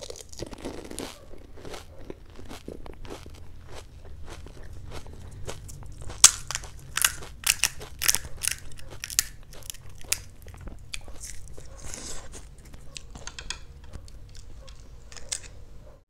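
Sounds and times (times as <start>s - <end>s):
crunching of crisp fried shells: 0.0s - 15.7s.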